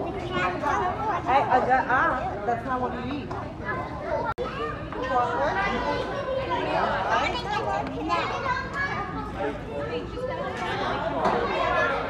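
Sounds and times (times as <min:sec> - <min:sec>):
crowd of voices chattering: 0:00.0 - 0:12.0.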